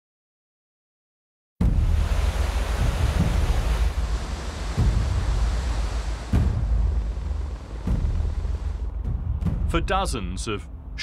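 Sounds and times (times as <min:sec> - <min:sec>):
rushing floodwater: 0:01.6 - 0:09.2
deep rumble: 0:01.6 - 0:11.0.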